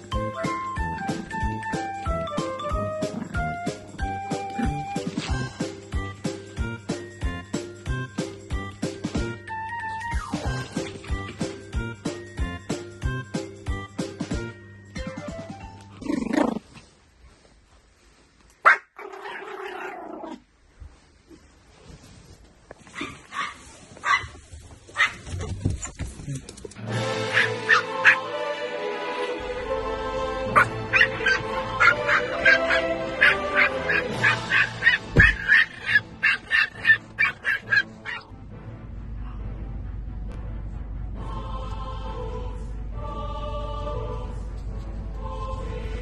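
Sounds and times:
background music: 0.0s - 16.6s, 26.7s - 46.0s
small dog yapping: 18.6s - 20.3s, 22.9s - 24.4s, 27.3s - 28.2s, 30.6s - 38.3s.

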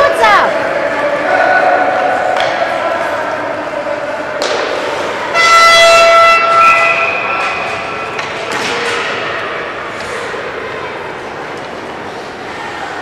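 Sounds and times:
ice rink noise: 0.0s - 13.0s
horn reedy tone: 5.3s - 7.5s.

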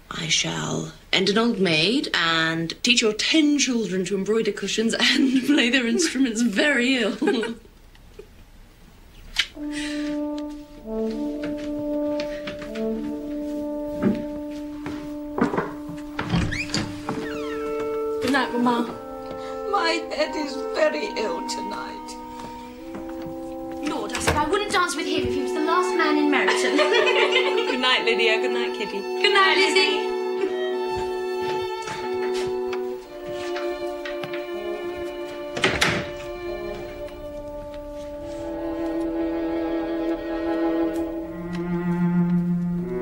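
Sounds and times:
background music steady notes: 9.0s - 43.0s
door squeak: 15.5s - 18.2s
wooden door knocks and thunks: 35.6s - 36.2s.

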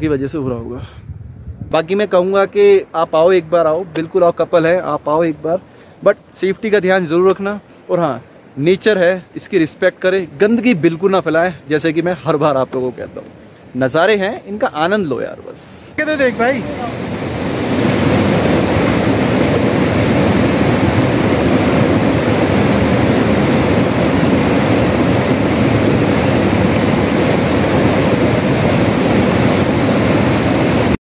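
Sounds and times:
stream rushing over boulders: 1.8s - 31.0s.

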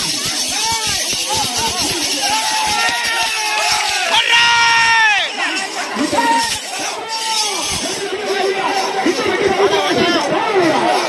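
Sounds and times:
crowd of men shouting: 0.4s - 11.0s.

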